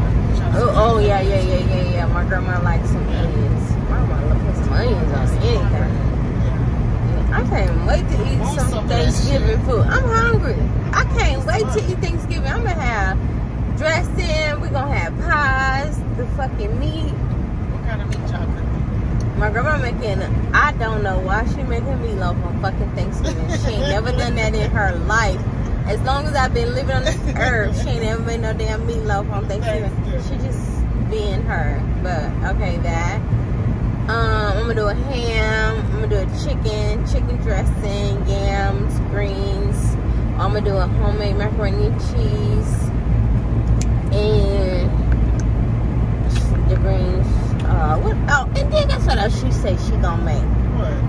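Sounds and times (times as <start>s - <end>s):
voices talking: 0.0s - 33.4s, 34.1s - 42.9s, 43.7s - 45.4s, 46.2s - 51.0s
car rumbling on road: 0.0s - 51.0s.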